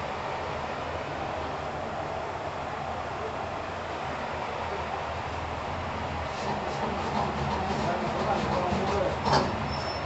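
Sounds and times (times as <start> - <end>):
traffic hum: 0.0 - 10.0.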